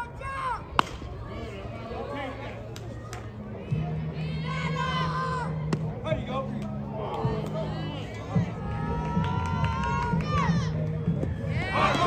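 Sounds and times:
bat cracking against ball: 0.8 - 1.1.

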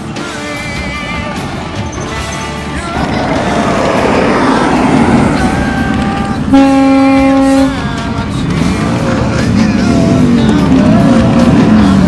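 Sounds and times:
motorcycle engines running: 0.1 - 12.0
horn blast: 3.0 - 8.0.

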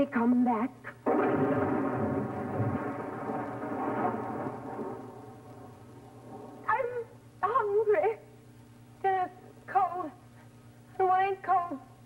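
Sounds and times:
thunder rumble: 1.0 - 7.2.

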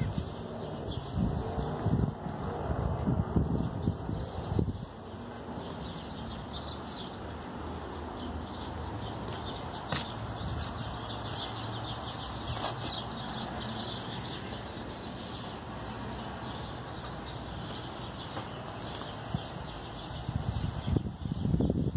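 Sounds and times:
outdoor background noise: 0.0 - 21.9.

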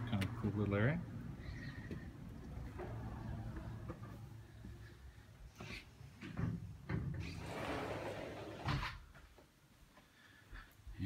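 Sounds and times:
door scraping: 6.4 - 9.1.

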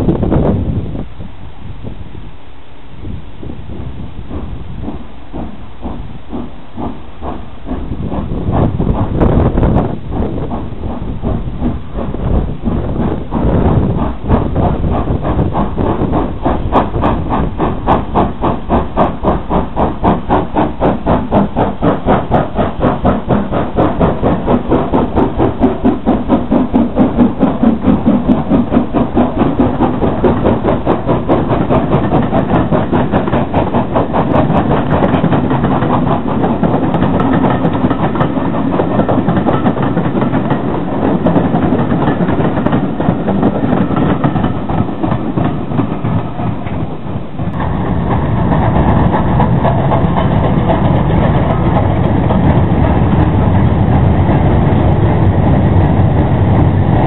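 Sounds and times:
steam locomotive exhaust beating: 0.0 - 57.0
train wheels clattering on rail joints: 3.7 - 57.0.

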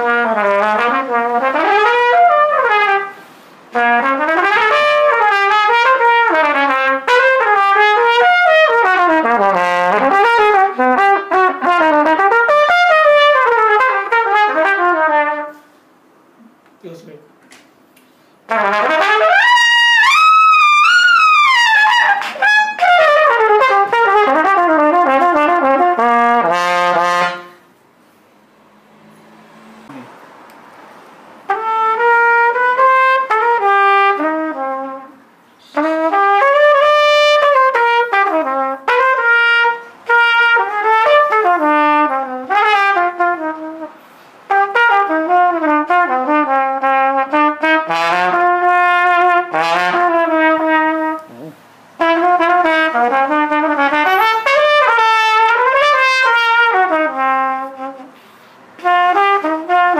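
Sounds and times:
solo trumpet: 0.0 - 15.8, 18.5 - 27.8, 31.5 - 59.9.

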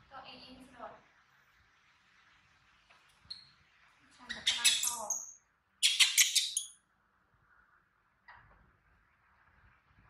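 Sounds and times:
baby monkey screeching: 4.3 - 6.7.

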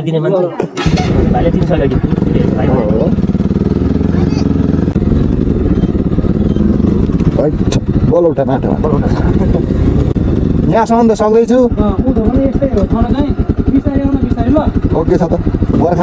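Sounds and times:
motorcycle engine running: 0.8 - 16.0.

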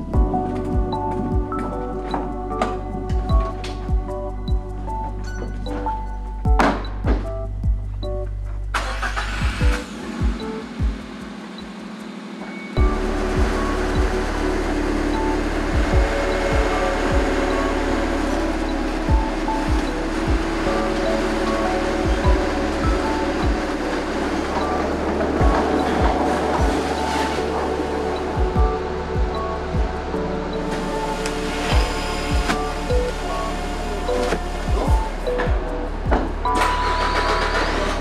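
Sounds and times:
low thuds: 0.0 - 8.7, 12.8 - 36.9
background music: 0.0 - 38.0
steady low rumble: 0.0 - 38.0.

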